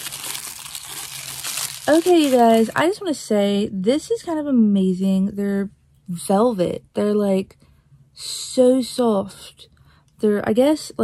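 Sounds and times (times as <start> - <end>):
tissue paper crinkling: 0.0 - 3.0.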